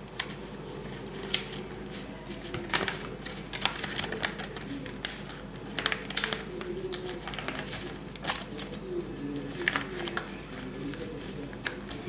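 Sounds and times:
paper being folded and creased: 0:00.1 - 0:12.0.

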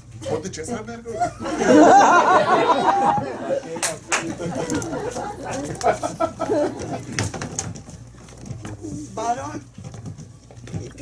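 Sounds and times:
knocks of wooden chairs: 0:04.2 - 0:09.1.

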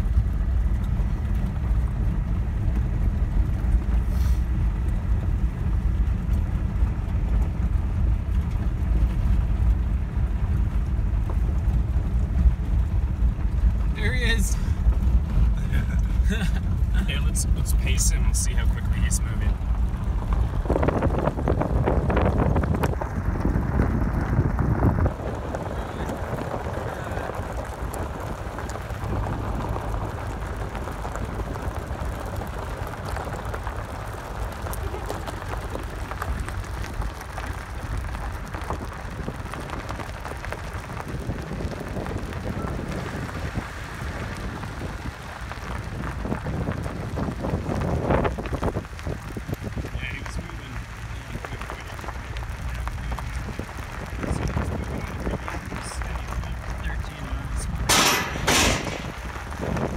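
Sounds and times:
tyres on gravel road: 0:00.0 - 0:59.9
wind rush: 0:07.7 - 0:59.9.

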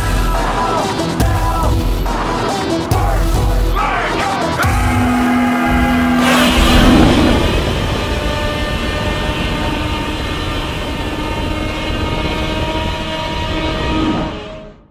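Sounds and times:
monster roar: 0:04.6 - 0:09.6.

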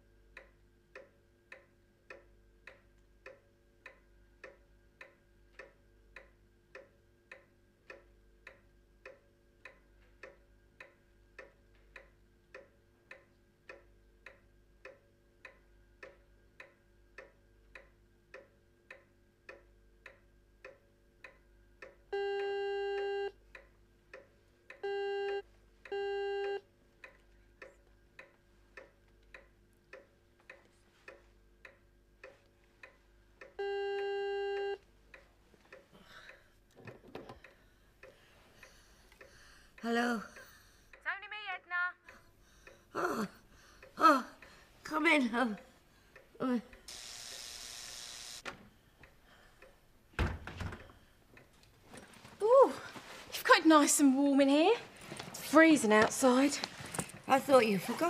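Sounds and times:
clock ticking: 0:00.0 - 0:50.2, 0:53.4 - 0:58.0
door-entry buzzer: 0:22.2 - 0:23.3, 0:24.8 - 0:26.6, 0:33.6 - 0:34.8, 0:46.9 - 0:48.6.

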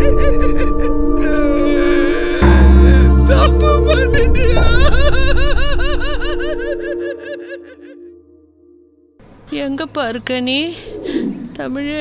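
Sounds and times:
wordless vocal cries: 0:00.0 - 0:08.4.

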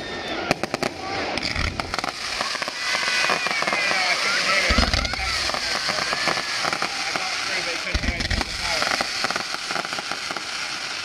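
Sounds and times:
fireworks bangs and crackles: 0:00.0 - 0:11.0
hiss and crackle of sparks: 0:00.6 - 0:11.0.

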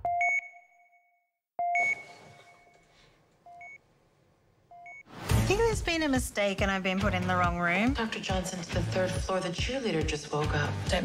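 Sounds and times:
patient monitor beeping: 0:00.0 - 0:03.8, 0:04.7 - 0:05.1.

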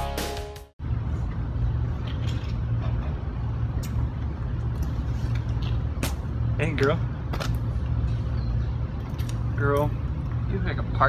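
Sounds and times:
vehicle engine rumbling: 0:00.8 - 0:11.0.

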